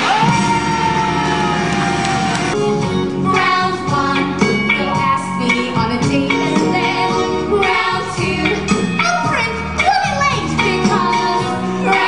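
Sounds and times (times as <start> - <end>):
band playing: 0.0 - 12.0.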